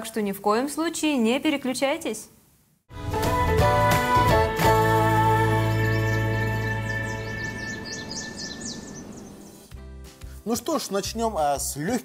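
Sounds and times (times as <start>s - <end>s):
music jingle chords: 3.0s - 8.2s
high bird chirps: 5.5s - 9.7s.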